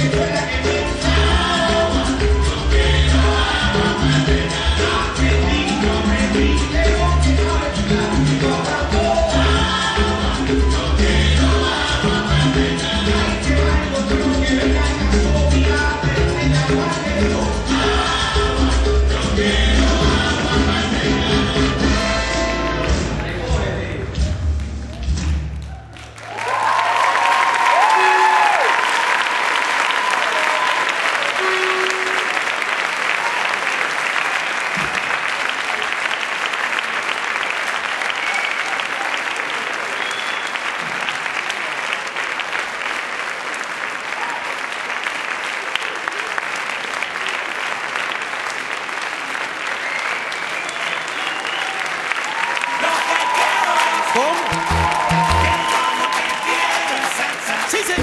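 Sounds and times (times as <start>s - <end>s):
audience applauding: 0.0s - 19.2s, 24.6s - 58.0s
shouts and cheers: 24.8s - 33.8s, 44.1s - 44.6s, 49.8s - 58.0s.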